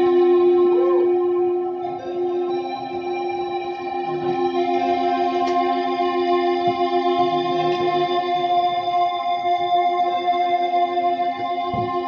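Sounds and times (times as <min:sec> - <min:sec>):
droning organ chord: 0:00.0 - 0:12.0.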